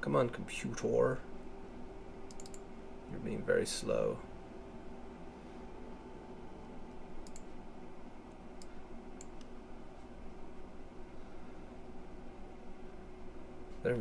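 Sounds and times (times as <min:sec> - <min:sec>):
low room hum: 0:00.0 - 0:14.0
computer mouse clicks: 0:02.3 - 0:02.6, 0:07.2 - 0:07.5, 0:08.6 - 0:09.5.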